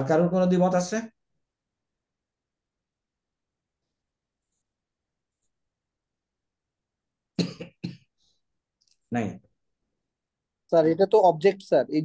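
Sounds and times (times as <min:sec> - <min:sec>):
person coughing: 0:07.4 - 0:08.1.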